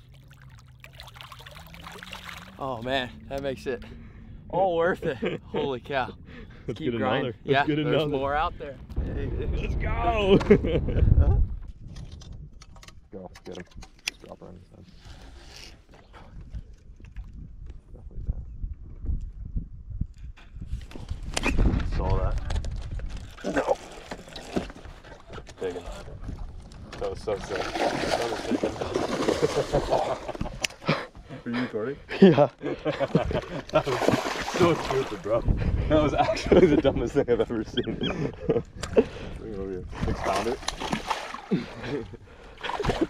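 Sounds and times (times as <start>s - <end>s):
water splashing and trickling: 0.0s - 4.0s, 22.5s - 30.8s, 33.1s - 35.4s, 38.9s - 43.0s
wind rumbling on microphone: 3.0s - 23.6s, 24.2s - 30.8s, 32.9s - 41.1s.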